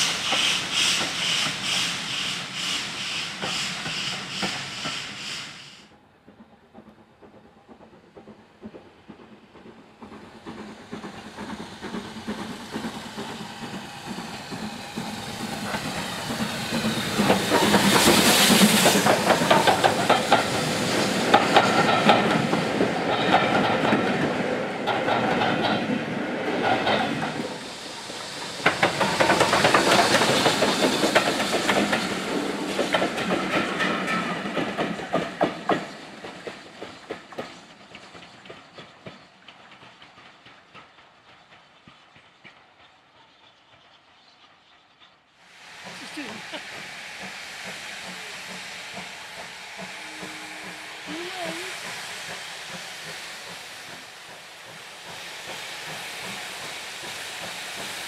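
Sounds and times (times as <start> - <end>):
steam locomotive passing: 0.0 - 58.0.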